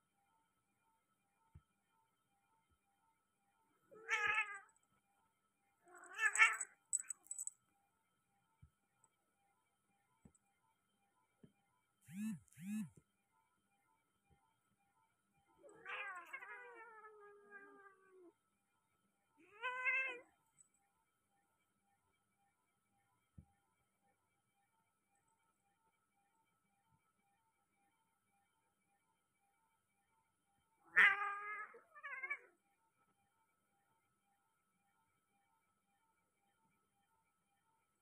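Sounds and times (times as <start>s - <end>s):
cat yowling: 4.0s - 4.7s, 5.9s - 6.6s, 15.7s - 18.3s, 19.4s - 20.2s, 30.9s - 32.5s.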